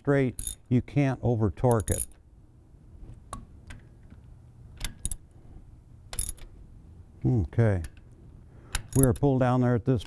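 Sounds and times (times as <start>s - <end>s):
ratchet wrench clicking: 0.4s - 0.6s, 1.7s - 2.2s, 6.1s - 6.5s, 8.7s - 9.2s.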